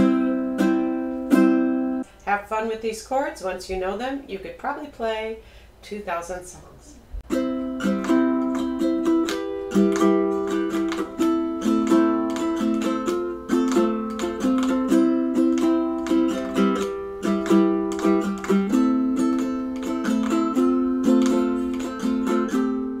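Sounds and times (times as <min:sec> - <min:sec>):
ukulele strummed chords: 0:00.0 - 0:02.0, 0:07.3 - 0:23.0.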